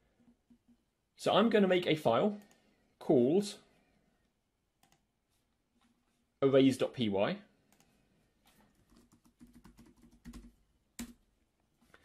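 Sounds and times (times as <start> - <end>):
typing on computer keyboard: 8.7 - 11.2.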